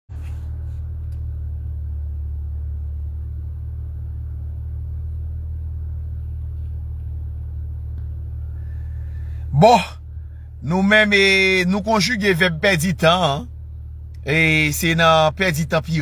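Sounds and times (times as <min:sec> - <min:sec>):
car engine rumbling: 0:00.1 - 0:16.0.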